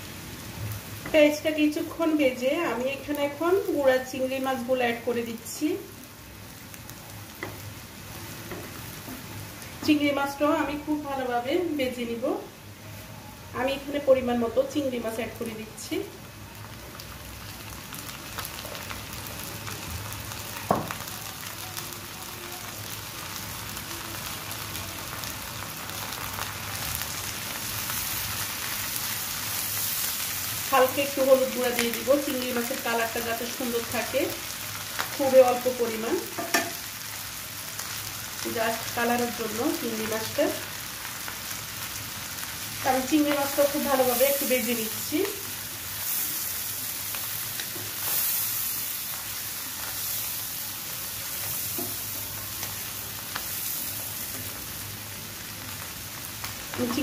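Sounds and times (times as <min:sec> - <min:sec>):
shrimp sizzling in hot oil: 0:00.0 - 0:57.0.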